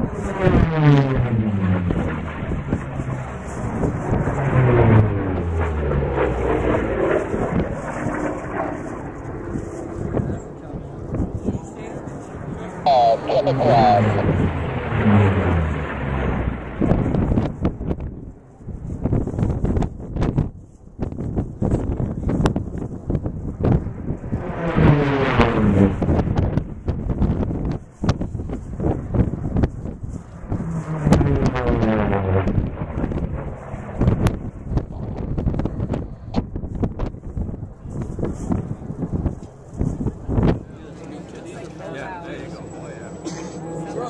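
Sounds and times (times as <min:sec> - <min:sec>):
wind buffeting microphone: 0:00.0 - 0:12.7, 0:14.2 - 0:41.0
racing aircraft flying past: 0:00.0 - 0:20.5, 0:21.2 - 0:44.0.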